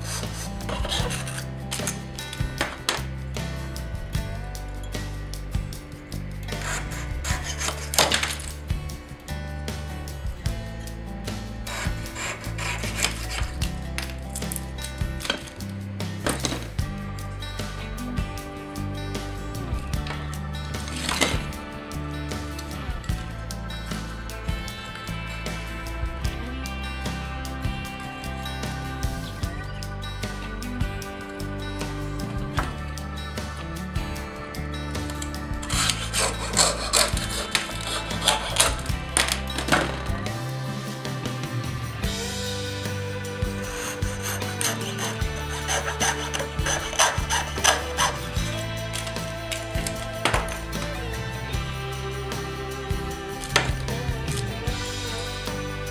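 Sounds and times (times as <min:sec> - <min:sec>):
saw rasping through bone: 0:00.0 - 0:02.1, 0:06.4 - 0:08.6, 0:11.6 - 0:15.6, 0:35.1 - 0:40.2, 0:43.2 - 0:51.1
background music: 0:00.0 - 0:55.9.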